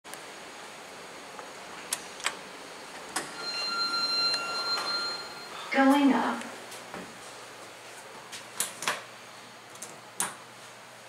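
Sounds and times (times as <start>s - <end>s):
elevator doors whining open: 1.8s - 6.4s
elevator clunk: 3.1s - 6.0s.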